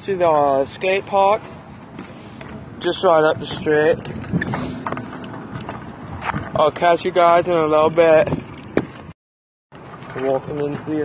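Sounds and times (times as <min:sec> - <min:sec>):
scooter wheels rolling on asphalt: 0:00.2 - 0:09.1, 0:09.7 - 0:11.0.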